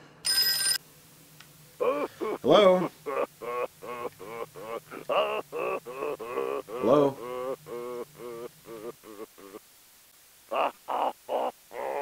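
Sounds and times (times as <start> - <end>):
man making hooting sounds: 1.8 - 9.7, 10.5 - 12.0.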